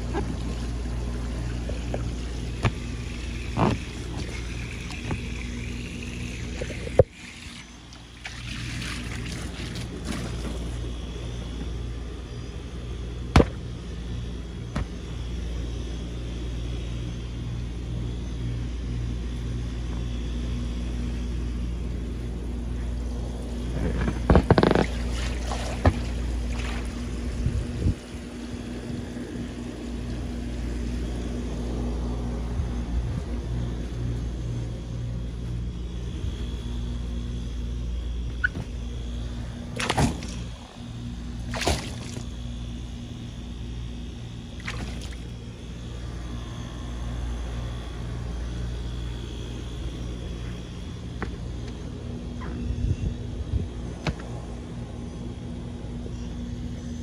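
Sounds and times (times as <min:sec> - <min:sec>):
water churning into a pool: 0:00.0 - 0:10.9, 0:24.6 - 0:27.2, 0:39.8 - 0:40.6, 0:41.5 - 0:42.4, 0:44.6 - 0:45.4.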